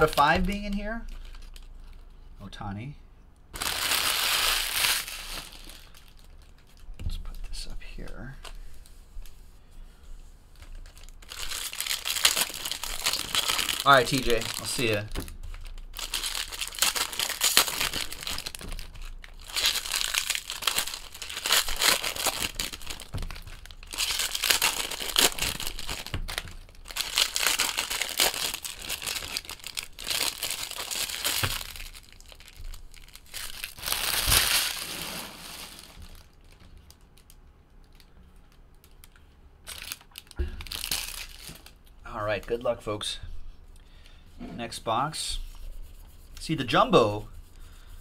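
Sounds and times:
foil wrappers tearing and crinkling: 0.0 - 2.0, 3.6 - 6.9, 10.6 - 38.1, 38.8 - 41.8.

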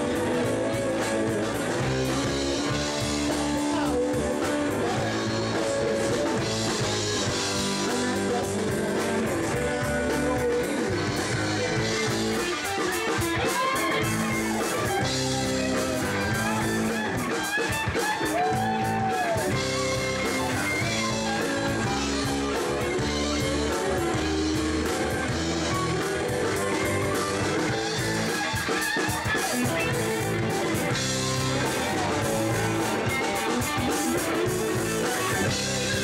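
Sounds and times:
blues-rock band playing: 0.0 - 36.0
lead electric guitar bending notes: 0.0 - 36.0.

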